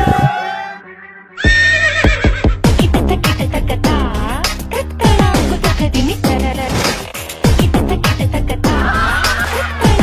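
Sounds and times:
horse whinny: 0.9s - 2.6s
music with thumping beat: 1.5s - 10.0s.

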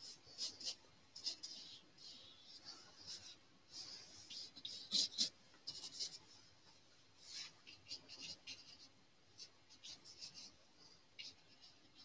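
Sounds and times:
paintbrush scratching on canvas: 0.0s - 6.4s, 7.2s - 10.6s.

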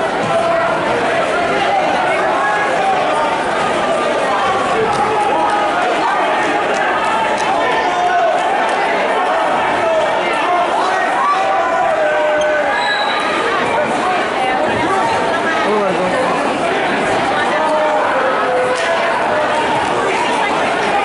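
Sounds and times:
crowd talking and calling out: 0.0s - 21.0s.

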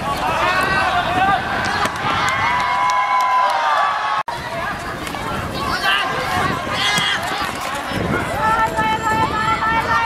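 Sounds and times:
people shouting during football: 0.0s - 10.0s.

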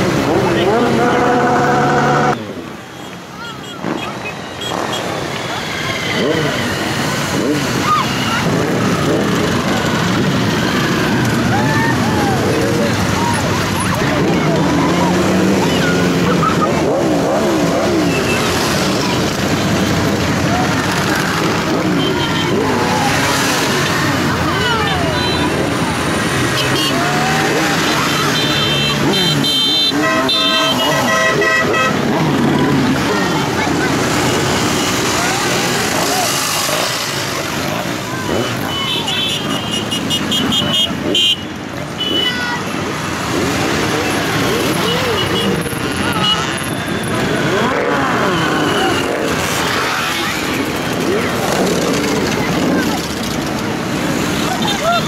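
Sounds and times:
motorcycles riding past: 0.0s - 55.0s
horn blasts: 28.1s - 32.2s.

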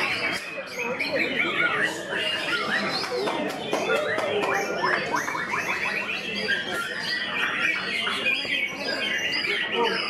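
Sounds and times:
bird singing varied phrases: 0.0s - 10.0s.

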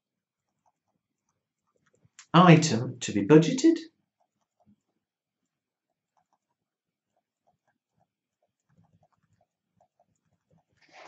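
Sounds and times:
pen writing on paper: 4.1s - 10.8s.

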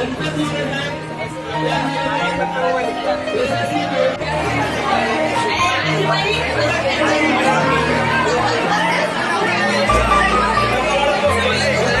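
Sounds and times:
crowd of people talking: 0.0s - 12.0s
background music with bass line: 9.9s - 12.0s.

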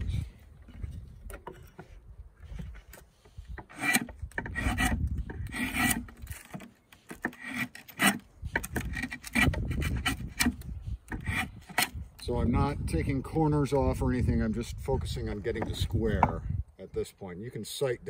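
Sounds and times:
draw knife shaving wood: 1.8s - 11.9s.

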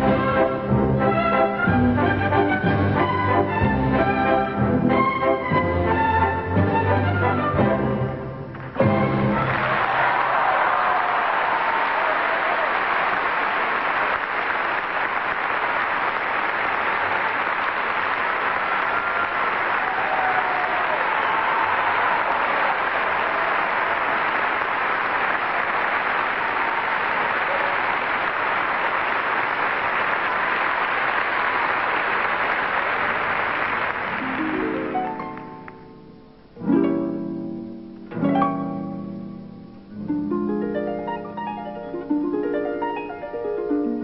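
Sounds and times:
audience applauding: 8.5s - 36.0s.

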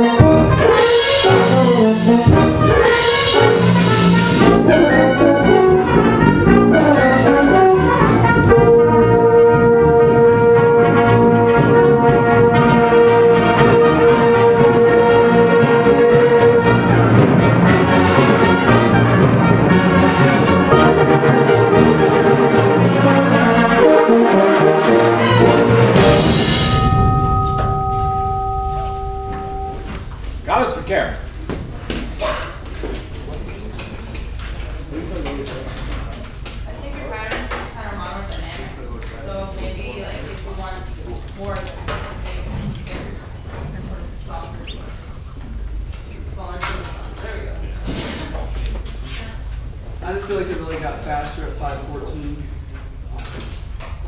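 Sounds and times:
concert band with brass: 0.0s - 30.0s
single held tone: 26.6s - 30.0s.

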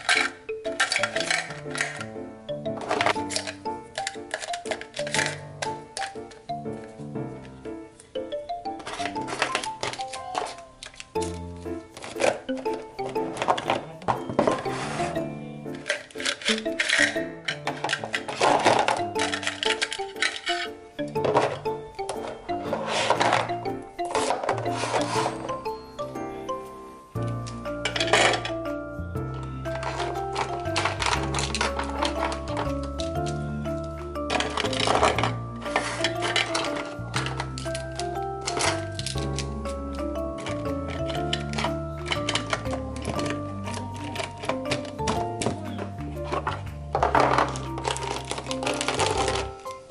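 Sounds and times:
plastic pens rattling and clicking: 0.0s - 25.8s, 27.2s - 49.9s
plastic markers clattering into cups: 0.0s - 26.1s, 27.2s - 49.9s
background music: 0.0s - 49.9s.

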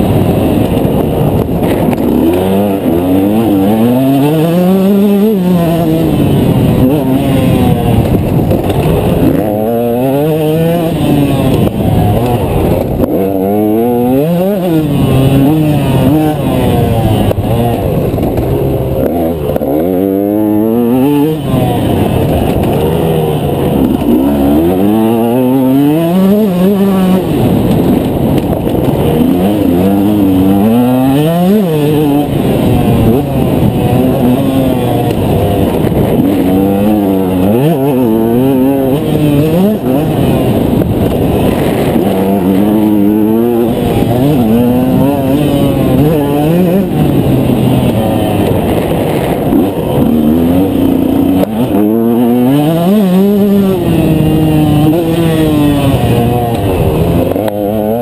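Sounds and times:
two-stroke motorcycle engine revving: 0.0s - 58.0s.

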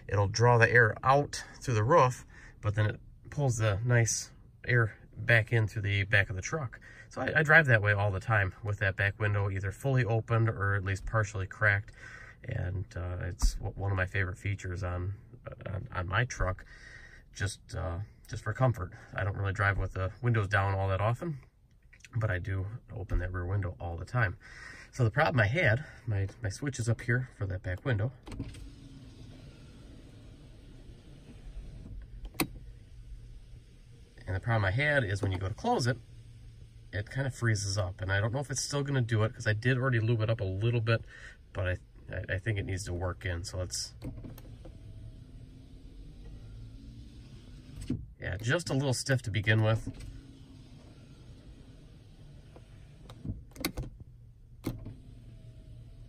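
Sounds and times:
electric window motor humming: 28.4s - 37.9s, 44.0s - 48.0s, 49.4s - 53.8s, 54.4s - 56.0s.

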